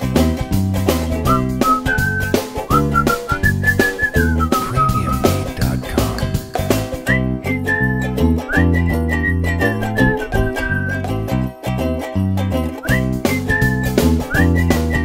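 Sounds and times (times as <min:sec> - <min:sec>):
plucked string accompaniment: 0:00.0 - 0:15.0
whistled melody: 0:01.2 - 0:05.5, 0:06.8 - 0:11.3, 0:12.7 - 0:15.0.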